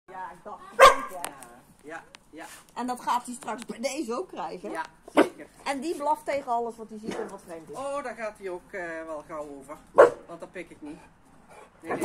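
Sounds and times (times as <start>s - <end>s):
puppy barking sharply: 0.8s - 1.2s, 9.9s - 10.3s.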